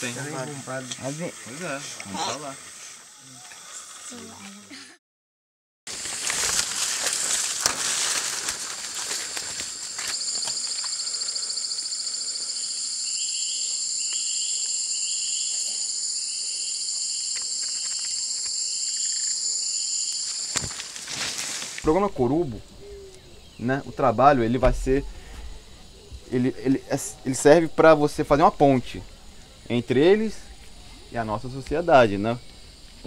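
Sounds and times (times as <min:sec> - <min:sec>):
bare feet rustling through leaves: 0:05.9 - 0:10.3, 0:20.2 - 0:21.9
high insect buzz: 0:05.9 - 0:23.8.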